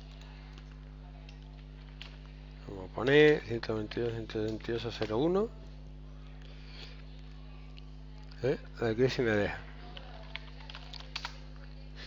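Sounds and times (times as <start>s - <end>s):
faint keyboard keystroke clicks: 9.9s - 11.7s.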